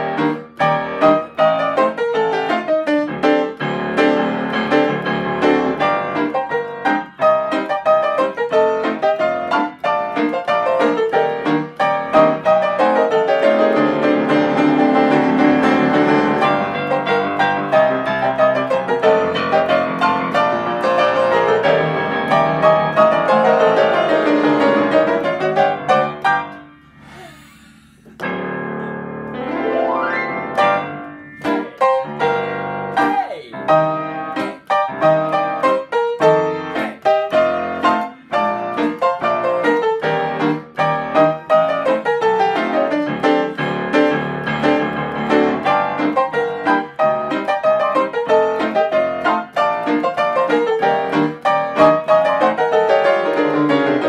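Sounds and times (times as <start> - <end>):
grand piano playing chords: 0.0 - 27.3, 28.1 - 54.0.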